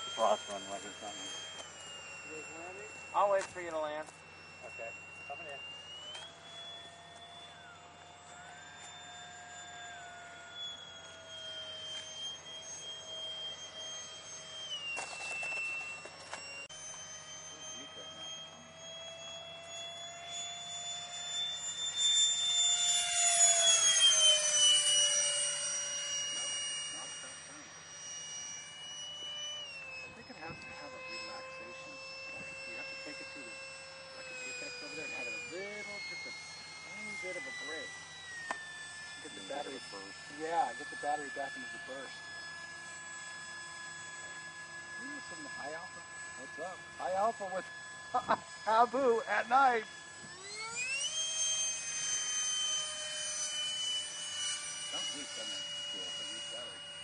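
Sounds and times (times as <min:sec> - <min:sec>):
model airplanes whining overhead: 0:00.0 - 0:57.0.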